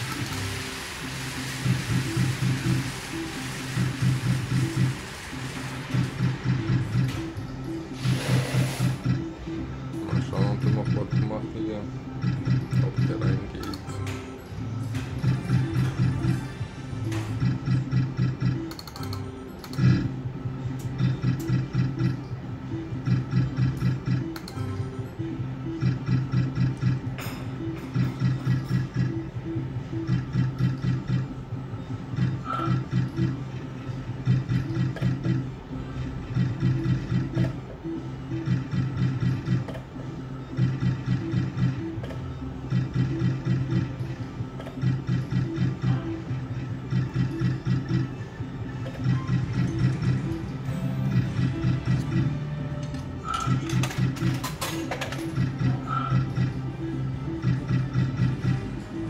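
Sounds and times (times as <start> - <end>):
slot machine reel-spin sounds: 0.0 - 59.0.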